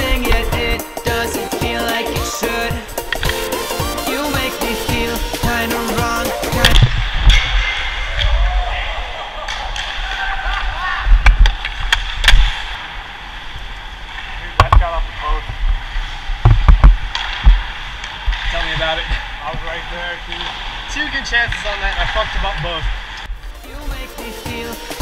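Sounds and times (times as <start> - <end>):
background music: 0.0 - 6.9, 23.4 - 25.0.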